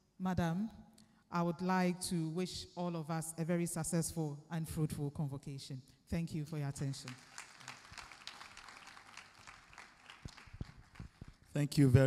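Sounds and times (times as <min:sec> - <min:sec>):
audience applauding: 0:07.1 - 0:11.6.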